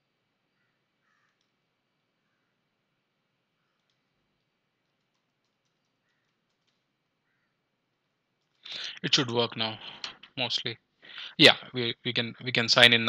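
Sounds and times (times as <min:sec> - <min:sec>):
man talking: 0:08.7 - 0:13.0.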